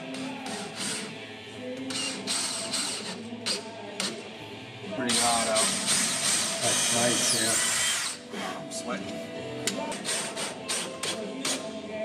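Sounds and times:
background music with singing: 0.0s - 12.0s
cordless drill driving screw: 5.1s - 8.2s.

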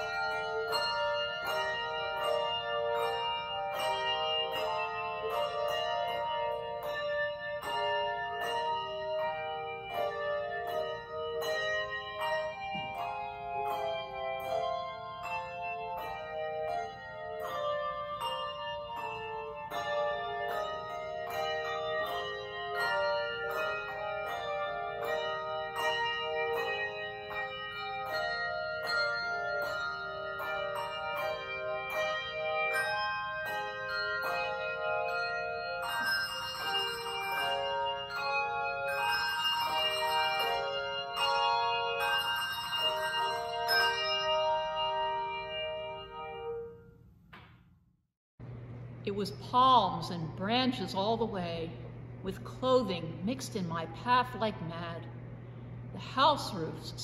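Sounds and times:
handbell choir playing: 0.0s - 47.0s.

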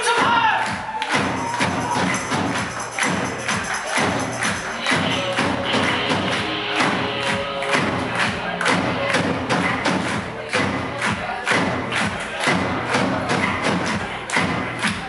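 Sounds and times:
heavy kick drum beat: 0.0s - 15.0s
live rock band playing: 3.8s - 9.0s.

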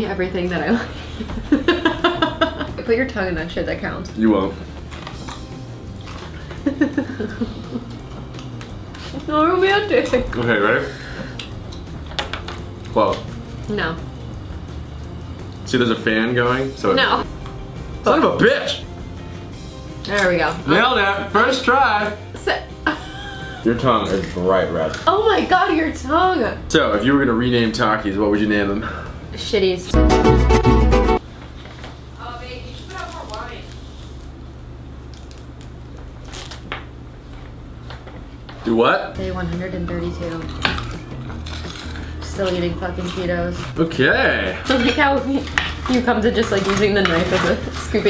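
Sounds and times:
fan humming: 0.0s - 48.0s
chopsticks tapping plates: 44.6s - 48.0s.

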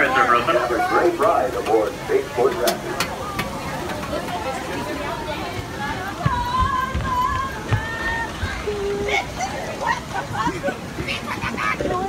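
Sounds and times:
faint indistinct voices: 0.0s - 12.0s
outdoor background murmur: 0.0s - 12.0s.

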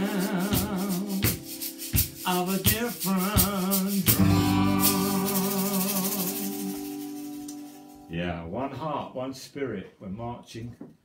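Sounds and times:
man singing with vibrato: 0.0s - 7.4s
strummed acoustic guitar: 0.0s - 8.1s.

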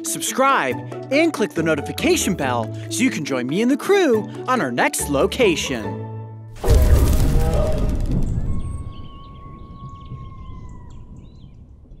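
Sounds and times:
deep boom: 6.6s - 12.0s
birds chirping: 7.4s - 12.0s.

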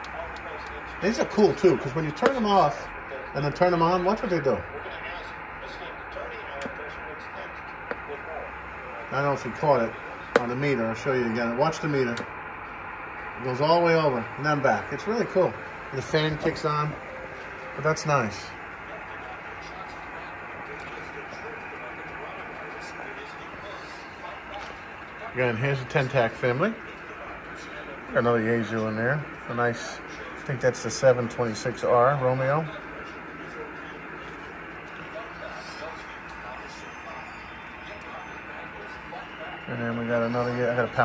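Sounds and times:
radio static hiss: 0.0s - 41.0s.

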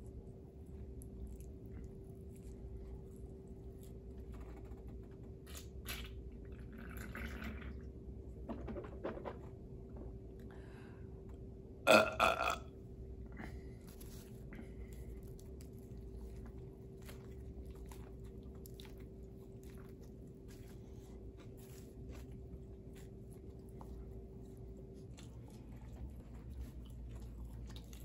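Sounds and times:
loud burp: 11.9s - 12.7s.

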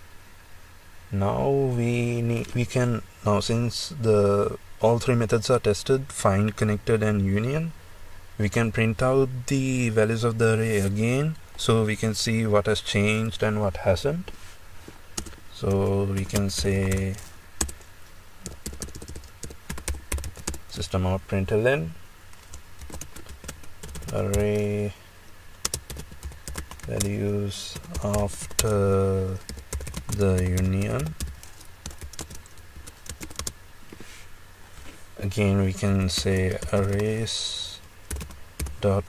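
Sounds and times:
computer keyboard keystrokes: 18.4s - 20.6s, 22.4s - 24.4s, 29.4s - 33.5s, 38.1s - 38.7s.

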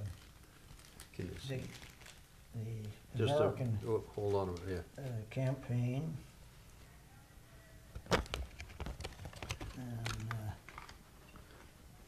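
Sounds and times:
plastic packets clicking and crinkling: 0.0s - 3.0s, 8.0s - 11.5s.

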